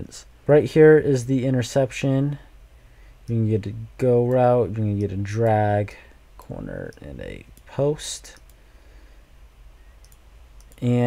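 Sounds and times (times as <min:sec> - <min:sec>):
man speaking: 0:00.0 - 0:02.5, 0:03.3 - 0:08.4, 0:10.8 - 0:11.0
low steady hum: 0:00.0 - 0:11.0
computer mouse clicks: 0:06.9 - 0:08.6, 0:10.0 - 0:10.9.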